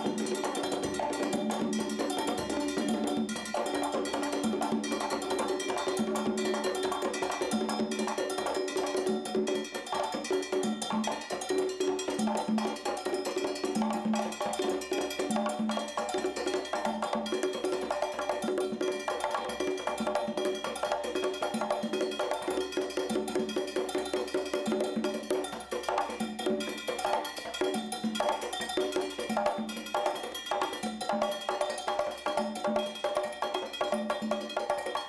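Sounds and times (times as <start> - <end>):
congas played by hand: 0.0 - 35.0.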